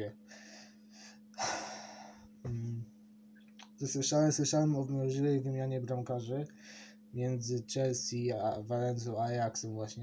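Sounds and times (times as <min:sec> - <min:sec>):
sharp intake of breath: 0:00.3 - 0:02.3, 0:06.6 - 0:07.1
man breathing softly: 0:00.3 - 0:02.4, 0:06.6 - 0:07.1.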